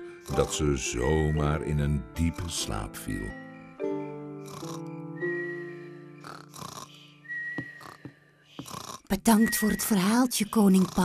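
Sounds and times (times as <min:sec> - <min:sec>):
cartoon snoring: 0:04.5 - 0:04.9, 0:06.2 - 0:07.0, 0:07.8 - 0:09.1, 0:10.6 - 0:11.0
high whistle: 0:05.2 - 0:06.0, 0:07.2 - 0:08.0, 0:09.3 - 0:10.0.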